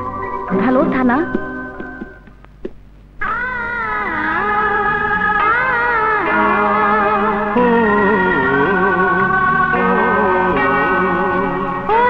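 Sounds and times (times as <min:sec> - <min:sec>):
eerie wavering synthesizer tone: 0:03.2 - 0:12.0
dramatic film score chord: 0:04.2 - 0:11.9.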